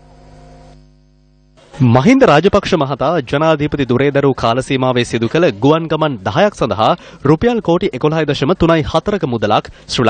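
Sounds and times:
electrical hum: 0:00.0 - 0:10.0
man speaking: 0:01.8 - 0:10.0.

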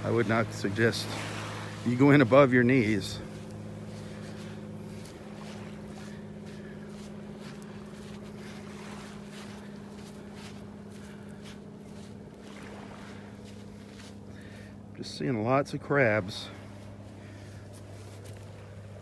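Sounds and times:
footsteps crunching on sand: 0:00.0 - 0:15.0, 0:16.2 - 0:19.0
steady low hum: 0:00.0 - 0:19.0.

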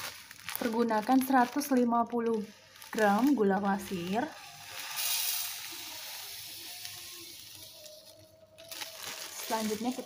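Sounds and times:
sugar pouring into metal pan: 0:00.0 - 0:10.0.

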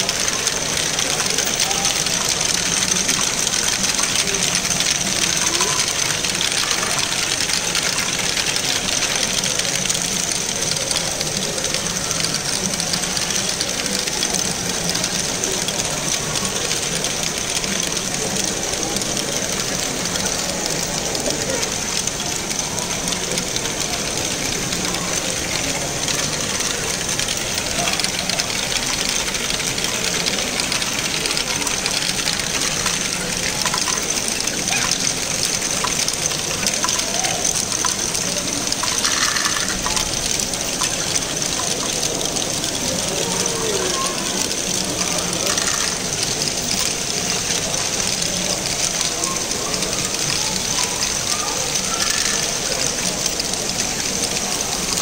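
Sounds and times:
plastic balls rattling: 0:00.0 - 0:55.0
plastic gears ticking: 0:00.0 - 0:55.0.

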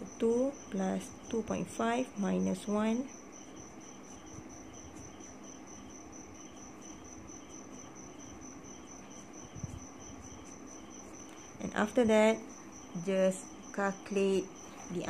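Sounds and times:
insect-like chirping pulse: 0:00.0 - 0:15.0
pen strokes on paper: 0:04.0 - 0:05.2.

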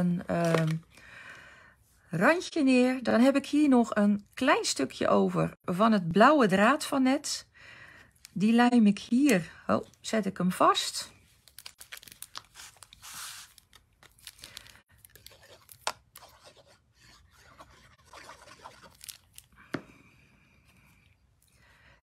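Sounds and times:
paper rustling: 0:00.3 - 0:00.8, 0:11.4 - 0:16.6.

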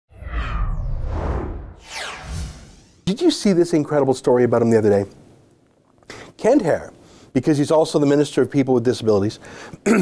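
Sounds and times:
deep rumble: 0:00.1 - 0:03.0
whooshes: 0:00.1 - 0:03.2.

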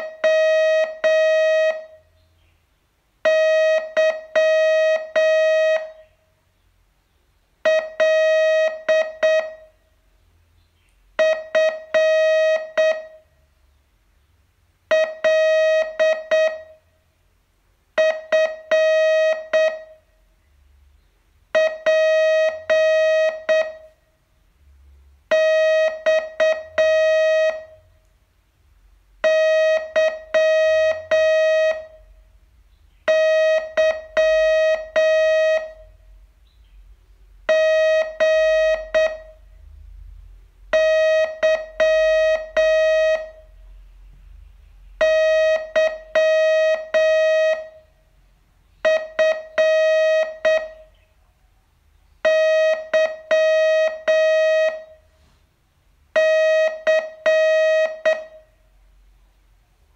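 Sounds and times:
morse code tone: 0:00.0 - 0:02.1, 0:03.2 - 0:06.1, 0:07.6 - 0:09.8, 0:11.2 - 0:13.3, 0:14.9 - 0:16.8, 0:18.0 - 0:20.0, 0:21.6 - 0:24.0, 0:25.3 - 0:27.9, 0:29.2 - 0:32.2, 0:33.0 - 0:36.0, 0:37.5 - 0:39.5, 0:40.7 - 0:43.6, 0:44.9 - 0:47.9, 0:48.8 - 0:51.0, 0:52.2 - 0:55.1, 0:56.2 - 0:58.5.

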